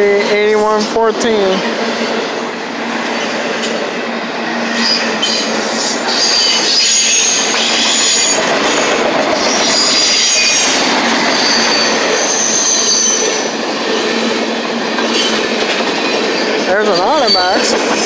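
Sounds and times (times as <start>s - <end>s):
train wheels rumbling on rail: 0.0s - 18.0s
high-pitched wheel squeals: 4.7s - 8.8s, 9.4s - 13.4s.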